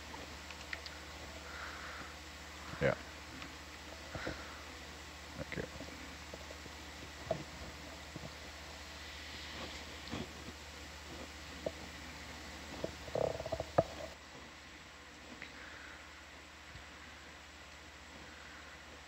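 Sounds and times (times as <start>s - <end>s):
low electrical hum: 0.0s - 19.0s
faint clicks and knocks: 0.1s - 1.0s, 12.7s - 14.2s.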